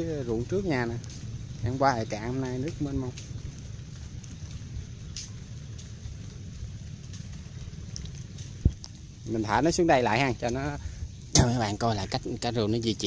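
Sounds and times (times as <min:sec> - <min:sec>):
rain falling on foliage: 0:00.0 - 0:13.0
water drips ticking: 0:00.0 - 0:13.0.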